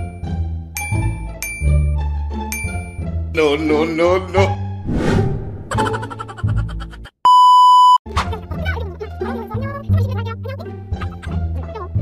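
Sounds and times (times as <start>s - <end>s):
censor bleep tone: 7.3s - 8.0s.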